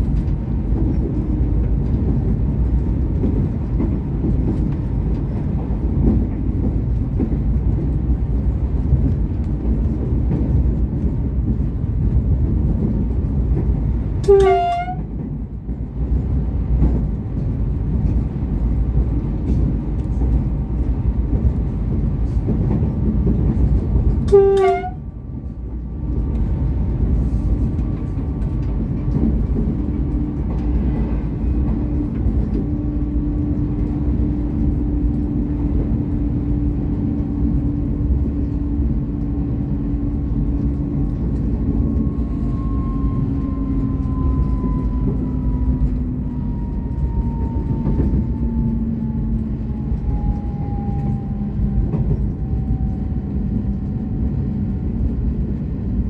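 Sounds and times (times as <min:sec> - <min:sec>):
train running gear and engine rumble: 0:00.0 - 0:56.0
train horn blast: 0:14.2 - 0:15.2, 0:24.2 - 0:25.1.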